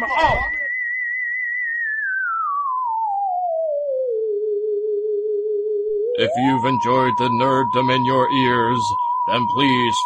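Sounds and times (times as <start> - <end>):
wavering theremin-like tone: 0.3 - 10.0.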